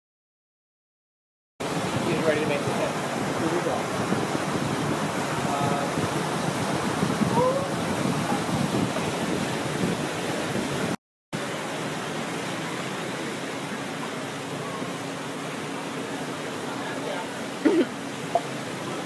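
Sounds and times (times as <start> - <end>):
steady rushing noise: 1.6 - 19.0.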